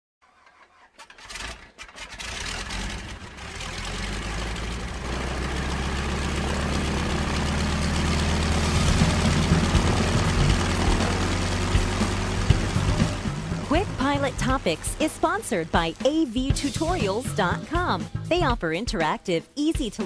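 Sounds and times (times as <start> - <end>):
piston aircraft engine running: 1.1 - 18.2.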